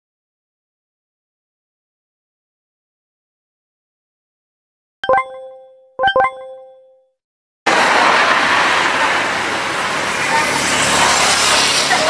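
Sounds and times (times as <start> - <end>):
electronic chime: 5.0 - 7.1
road traffic: 7.7 - 12.0.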